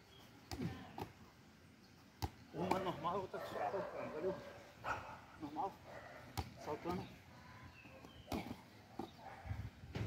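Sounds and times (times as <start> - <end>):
football thuds: 8.0 - 9.2.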